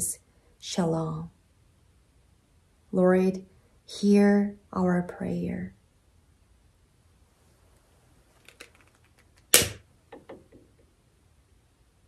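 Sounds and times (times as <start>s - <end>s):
lighter igniter snap: 9.5s - 9.8s.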